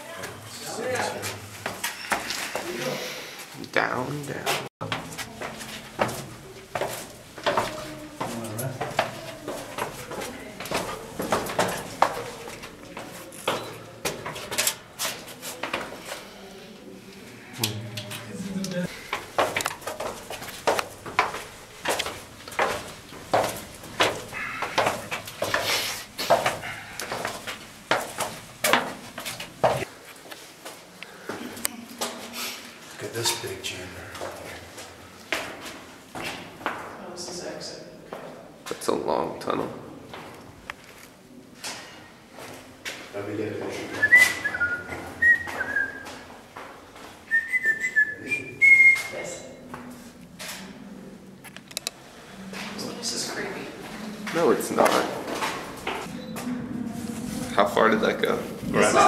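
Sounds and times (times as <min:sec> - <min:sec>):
footsteps on stone: 0:04.5 - 0:16.0, 0:18.8 - 0:31.4.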